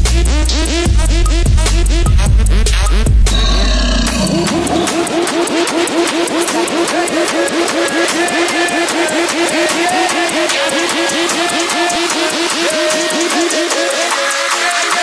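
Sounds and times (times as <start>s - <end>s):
plucked notes electronic track: 0.0s - 7.0s
bass-heavy electronic track: 0.0s - 15.0s.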